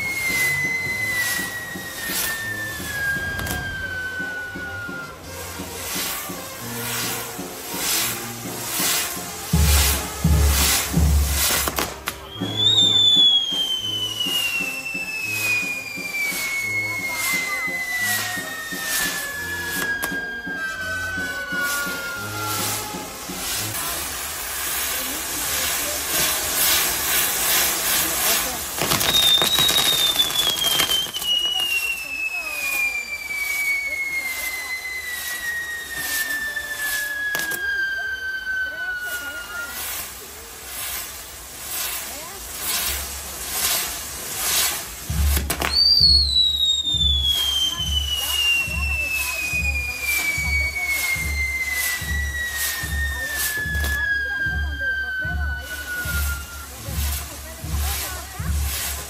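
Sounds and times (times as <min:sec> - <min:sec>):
descending firework whistle: 0:00.0 - 0:59.0
fireworks crackling and hissing: 0:00.0 - 0:59.0.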